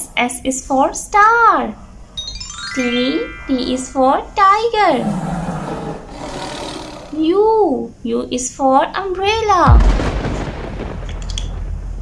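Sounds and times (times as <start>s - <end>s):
tiger roar: 4.9s - 7.4s.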